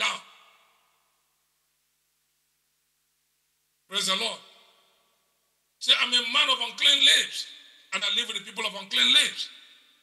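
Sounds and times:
man speaking: 0:00.0 - 0:00.6, 0:03.9 - 0:04.6, 0:05.8 - 0:09.6.

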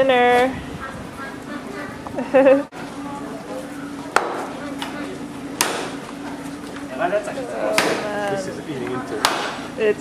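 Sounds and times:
cleaver chopping bone on wood: 0:05.6 - 0:05.9, 0:09.2 - 0:09.6.

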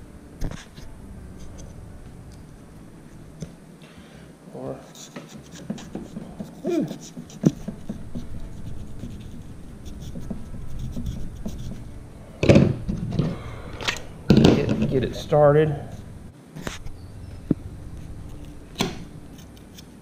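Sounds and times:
knife scratching shark skin: 0:04.8 - 0:11.8, 0:19.3 - 0:20.0
handling noise: 0:05.2 - 0:19.9.

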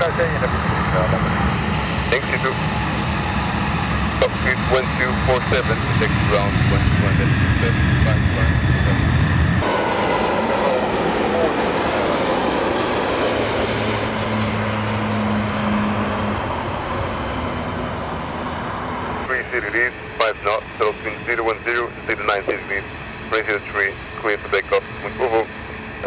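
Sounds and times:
voice over radio: 0:00.0 - 0:01.4, 0:02.0 - 0:02.7, 0:04.1 - 0:09.1, 0:10.0 - 0:11.6, 0:19.3 - 0:25.5
jet engines rushing and whining: 0:00.0 - 0:26.0.

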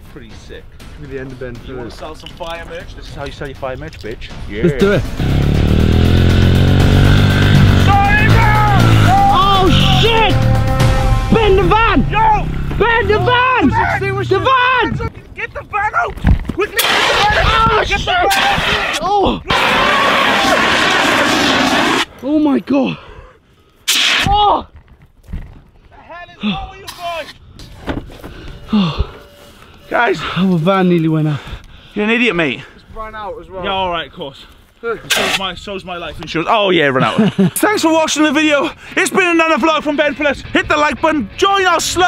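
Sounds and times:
loud backing music: 0:04.4 - 0:12.7
pit bike engine running: 0:04.8 - 0:14.2
man's drawn-out cry: 0:07.9 - 0:12.5
sharp hissed breath: 0:23.8 - 0:24.2.

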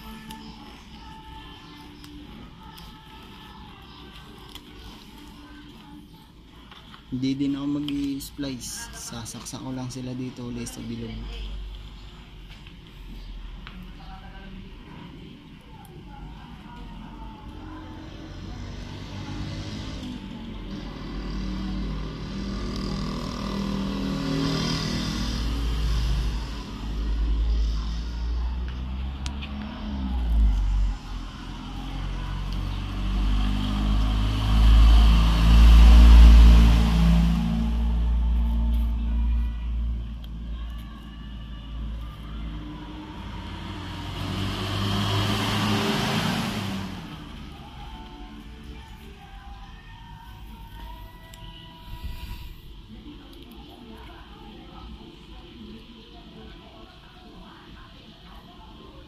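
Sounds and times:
motor vehicles passing: 0:16.7 - 0:50.9.

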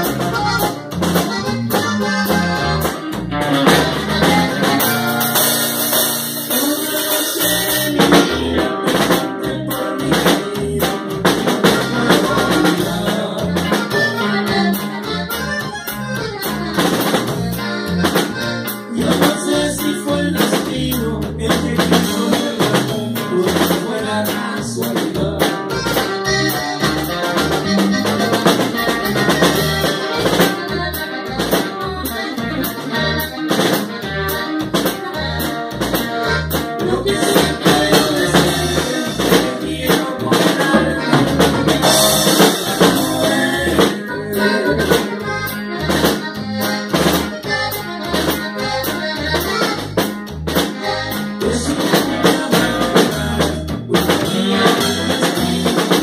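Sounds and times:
button accordion: 0:00.0 - 0:56.0
drum kit beat: 0:00.0 - 0:56.0
electric bass: 0:00.0 - 0:56.0.

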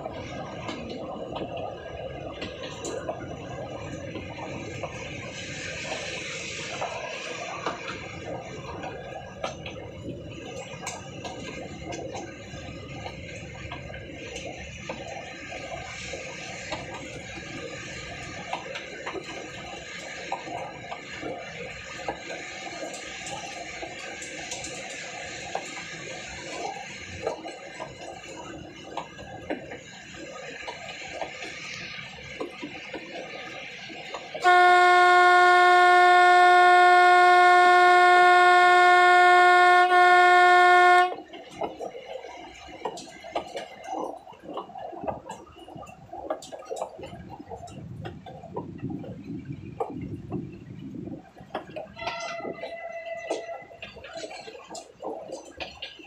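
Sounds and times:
toy train clattering on rails: 0:00.0 - 0:34.8
train horn blast: 0:34.4 - 0:41.3.

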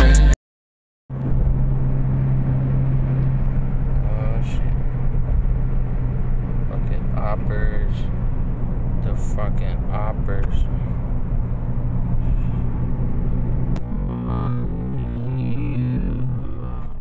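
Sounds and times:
hip-hop music: 0:00.0 - 0:00.4
car cabin road noise: 0:01.1 - 0:17.0.

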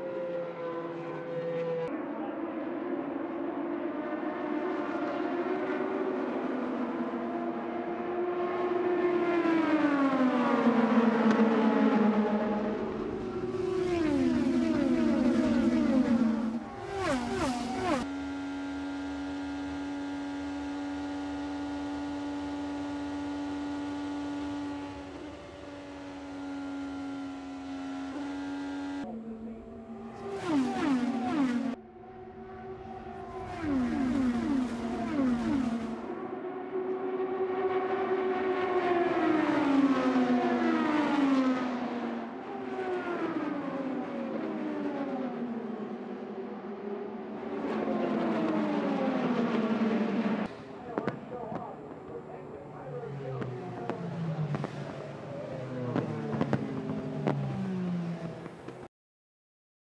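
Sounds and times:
race car engine: 0:00.0 - 0:58.9
race cars passing by: 0:00.0 - 0:58.9.

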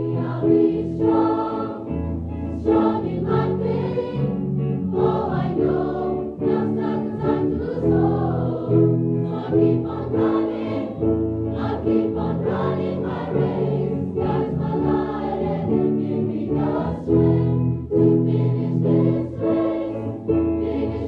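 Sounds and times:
choir singing in harmony: 0:00.0 - 0:21.0.

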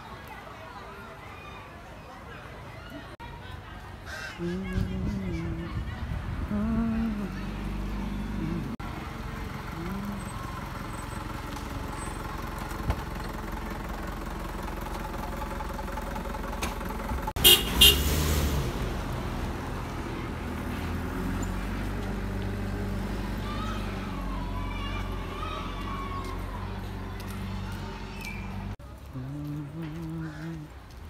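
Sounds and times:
road traffic: 0:00.0 - 0:31.0
vehicle horn toots: 0:17.4 - 0:18.2.

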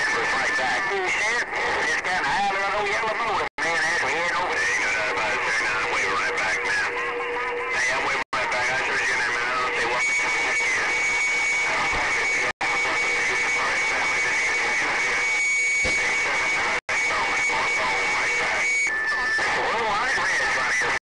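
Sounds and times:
garbled radio voices talking: 0:00.0 - 0:21.0.

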